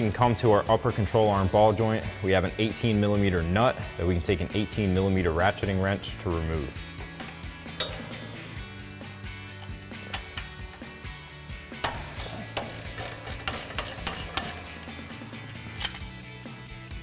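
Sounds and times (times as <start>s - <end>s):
background music: 0.0s - 17.0s
ratchet wrench clicking: 9.6s - 10.9s, 11.8s - 16.2s.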